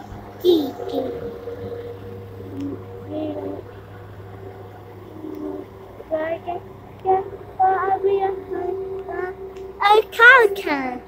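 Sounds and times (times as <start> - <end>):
low steady hum: 0.0 - 11.0
child singing held notes: 2.5 - 3.7, 5.1 - 11.0.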